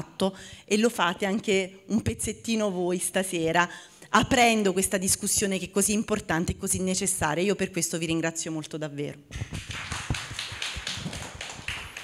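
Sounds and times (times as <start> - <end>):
audience applauding: 9.4 - 12.0.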